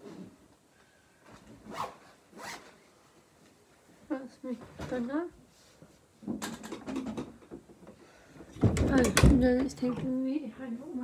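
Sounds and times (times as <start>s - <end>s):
bag zip being pulled: 1.7s - 2.7s.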